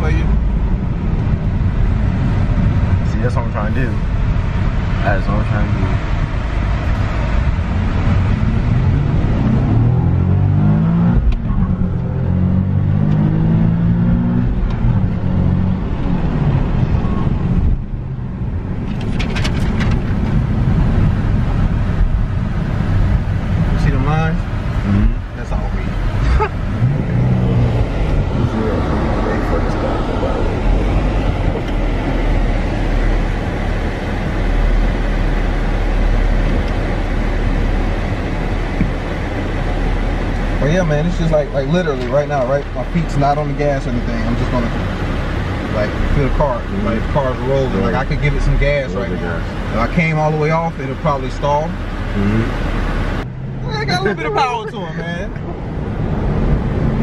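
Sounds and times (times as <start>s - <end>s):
car engine accelerating: 0.0s - 57.0s
road and cabin rumble: 0.0s - 57.0s.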